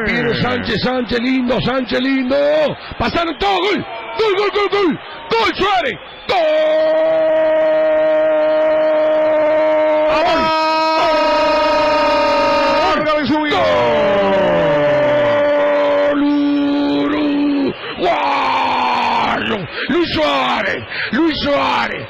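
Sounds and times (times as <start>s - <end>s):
commentator shouting goal cry: 0.0s - 22.0s.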